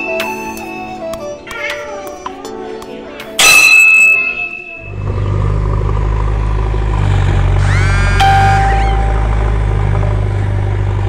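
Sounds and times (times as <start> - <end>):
rising engine whine: 4.7 - 11.0
diesel engine rumbling: 4.8 - 11.0.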